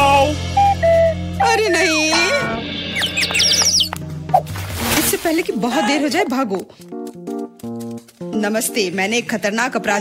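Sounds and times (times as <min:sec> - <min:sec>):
background music: 0:00.0 - 0:10.0
cartoon squeaks: 0:03.0 - 0:04.0.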